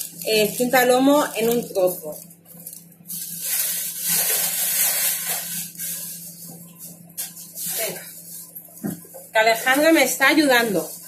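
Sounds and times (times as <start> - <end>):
plastic bags rustling: 0.0 - 11.0.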